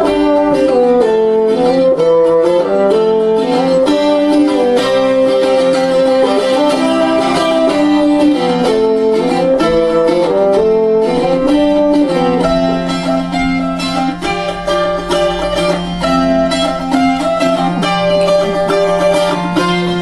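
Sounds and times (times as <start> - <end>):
bassoon melody: 0.0 - 20.0
plucked string instrument: 0.0 - 20.0.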